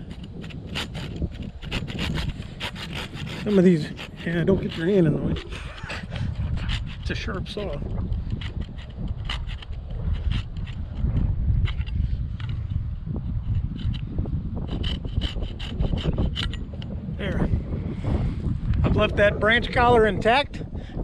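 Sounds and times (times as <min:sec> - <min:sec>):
hand saw cutting wood: 0:00.0 - 0:12.6, 0:14.6 - 0:16.7.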